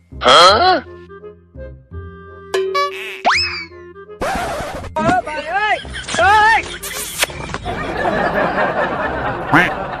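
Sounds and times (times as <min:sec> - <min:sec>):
light background music: 0:00.0 - 0:09.4.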